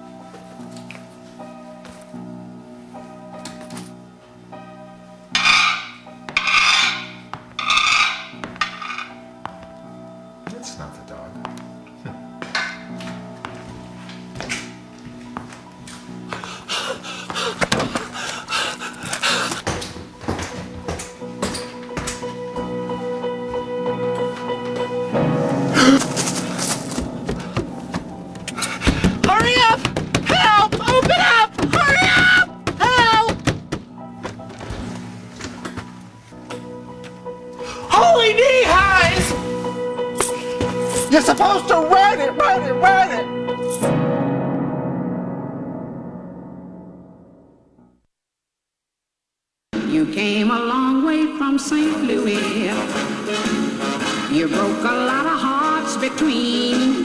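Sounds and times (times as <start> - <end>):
background music: 0.0 - 48.0, 49.8 - 57.0
footsteps: 5.4 - 9.8, 11.4 - 25.0, 25.7 - 37.7, 38.6 - 41.8
person making wordless sounds: 29.1 - 33.5.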